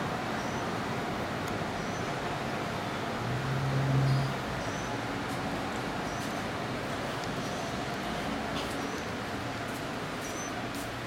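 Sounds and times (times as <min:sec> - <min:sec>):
city traffic hum: 0:00.0 - 0:11.0
vehicle drone: 0:00.0 - 0:11.0.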